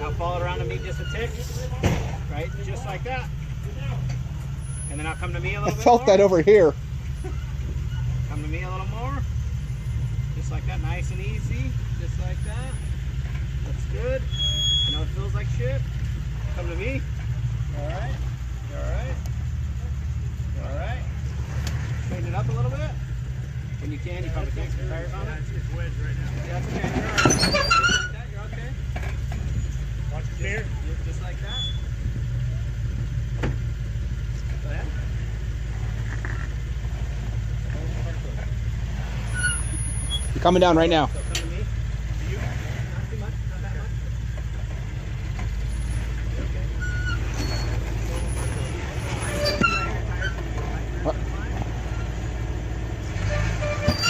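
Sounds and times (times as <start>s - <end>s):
engine idling: 0.0s - 54.0s.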